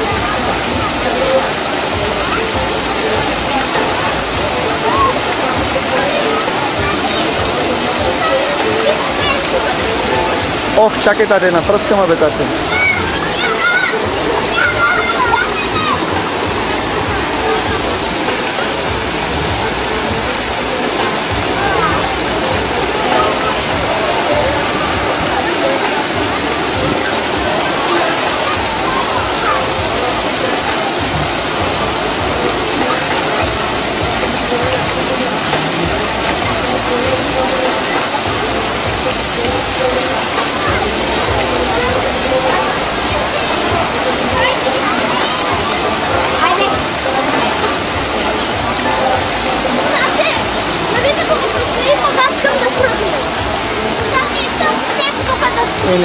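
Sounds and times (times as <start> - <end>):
people talking and calling: 0.0 - 56.0
water rushing and splashing: 0.0 - 56.0.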